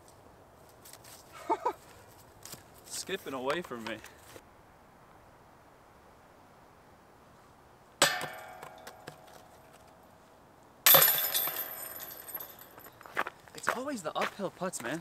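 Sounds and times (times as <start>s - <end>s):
disc hitting metal chain basket: 8.0s - 10.0s, 10.9s - 12.9s.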